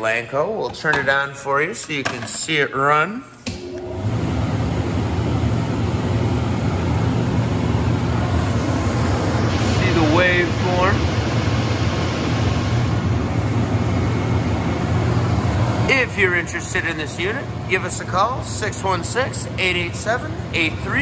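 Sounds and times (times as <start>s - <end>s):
low electrical hum: 0.0s - 21.0s
cooling fan rushing: 3.1s - 21.0s.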